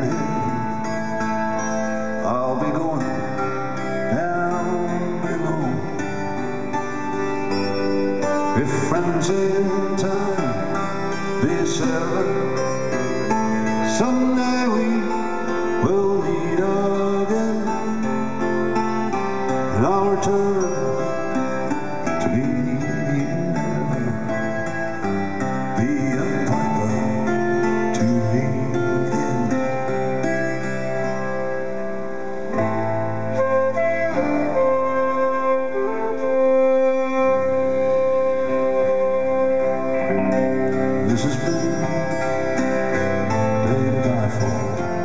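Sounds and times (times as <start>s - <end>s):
live band acoustic guitar melody: 0.0s - 45.0s.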